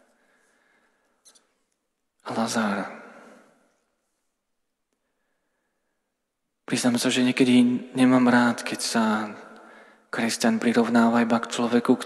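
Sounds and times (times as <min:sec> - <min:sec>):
speech reverberating in church: 0:00.0 - 0:12.0.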